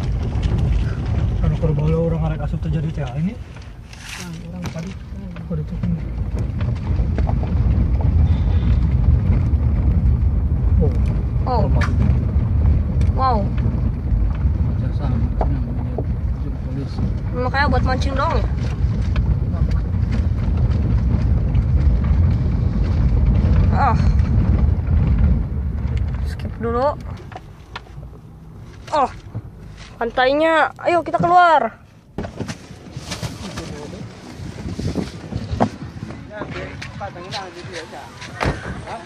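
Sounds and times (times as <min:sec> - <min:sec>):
car rumbling over dirt road: 0:00.0 - 0:39.0.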